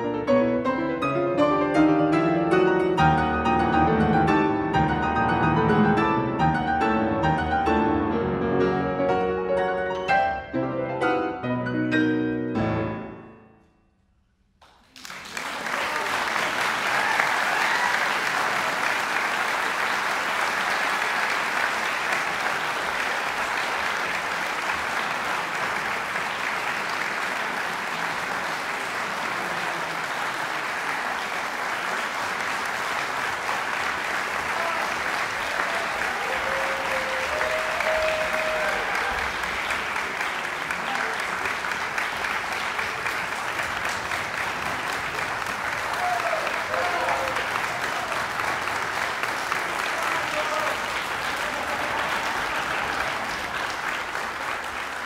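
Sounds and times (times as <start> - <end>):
audience applauding: 14.6 - 55.0.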